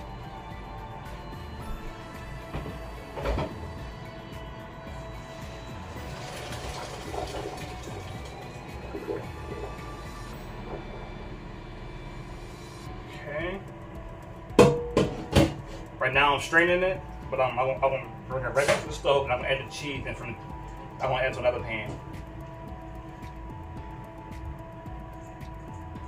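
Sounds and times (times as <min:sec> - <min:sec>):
background music: 0:00.0 - 0:26.0
water pouring into colander: 0:05.9 - 0:10.0.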